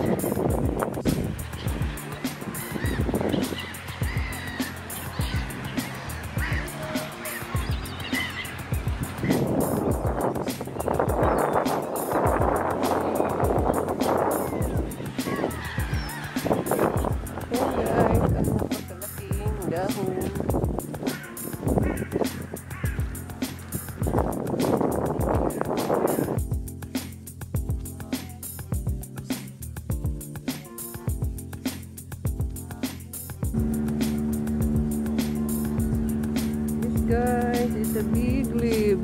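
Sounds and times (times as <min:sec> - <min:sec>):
gulls squawking: 0:00.0 - 0:26.4, 0:33.6 - 0:39.0
music with steady beat: 0:00.0 - 0:39.0.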